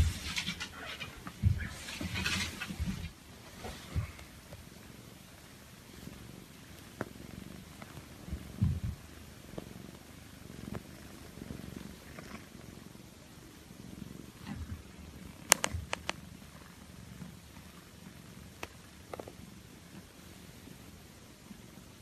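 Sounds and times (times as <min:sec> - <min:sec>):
cat purring: 0:00.0 - 0:22.0.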